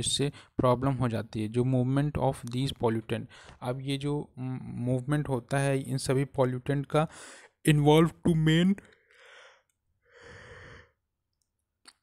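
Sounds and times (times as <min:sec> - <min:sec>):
person breathing close to microphone: 0:03.3 - 0:03.6, 0:07.1 - 0:07.6, 0:08.8 - 0:11.0.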